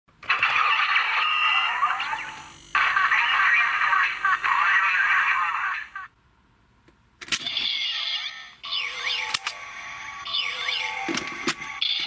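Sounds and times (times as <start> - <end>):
tinny electronic toy voice: 0.3 - 6.1, 7.4 - 12.0.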